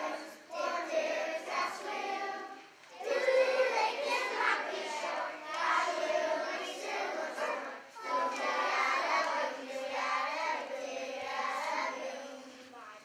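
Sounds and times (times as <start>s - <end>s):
children's choir singing: 0.0s - 12.8s.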